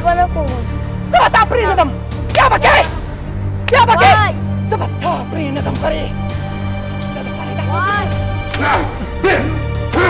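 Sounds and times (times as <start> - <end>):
background music with low drone: 0.0 - 10.0.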